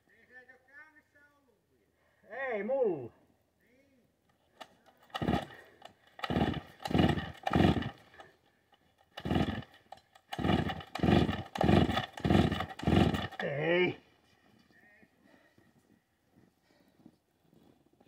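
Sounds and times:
chainsaw recoil starter pulls: 4.6 - 13.6
chainsaw engine spinning over: 4.9 - 13.6.

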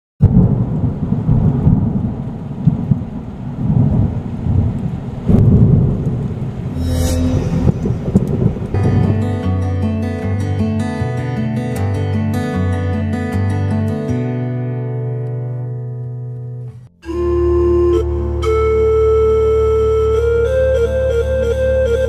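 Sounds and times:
rain: 0.2 - 6.8
thunder rumbling: 0.2 - 9.4
acoustic guitar music: 7.4 - 22.0.

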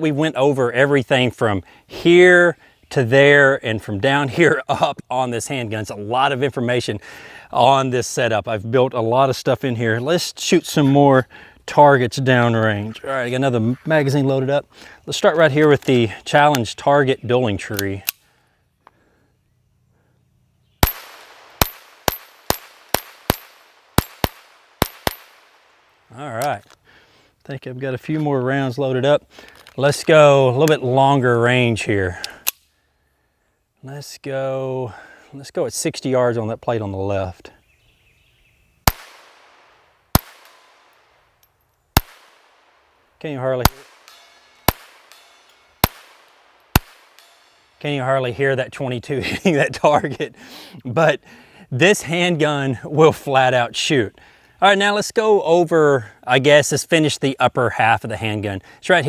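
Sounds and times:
pistol shots with echo: 20.8 - 25.6, 38.9 - 40.9, 42.0 - 42.7, 43.6 - 47.7.

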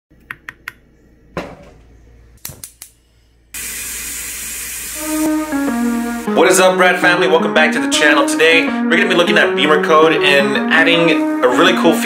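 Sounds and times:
loud steady hiss: 3.6 - 6.3
guitar music: 4.9 - 12.0.

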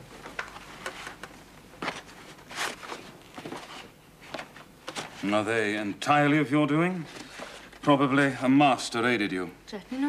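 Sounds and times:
paper sheets rustling: 0.4 - 5.4.

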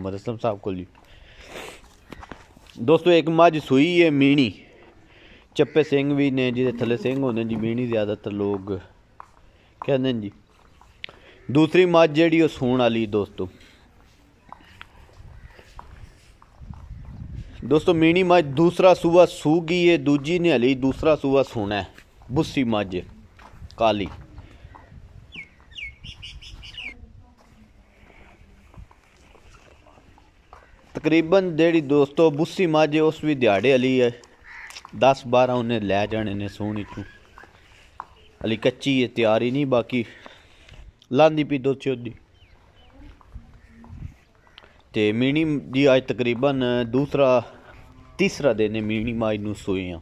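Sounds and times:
footsteps crunching on dry ground: 0.3 - 41.4, 42.0 - 50.0
man speaking: 2.8 - 4.8, 5.6 - 8.9, 11.5 - 13.8, 30.9 - 34.2, 34.9 - 37.2, 38.4 - 40.2, 41.1 - 42.2, 44.9 - 50.0.

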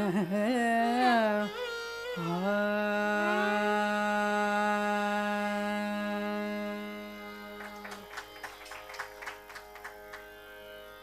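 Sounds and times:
tanpura drone: 0.0 - 11.0.

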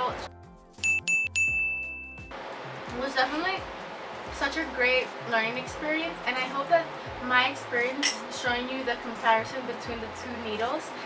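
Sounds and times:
background music: 0.0 - 11.0
bright bell-like ding: 0.8 - 2.3.

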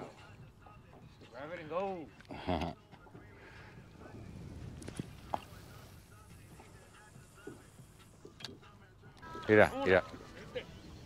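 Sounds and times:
low rumble of wind and water: 3.2 - 8.3.

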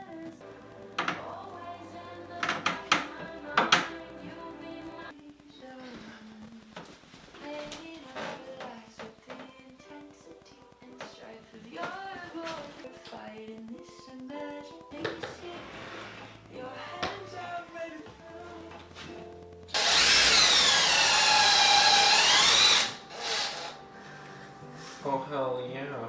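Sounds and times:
background music with singing: 0.0 - 26.0
cordless drill motor whine: 19.8 - 23.8.

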